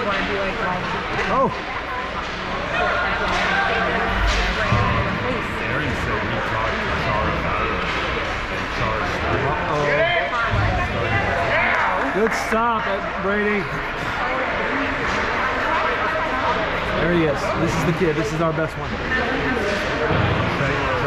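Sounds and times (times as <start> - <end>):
voices calling out and chattering: 0.0 - 21.0.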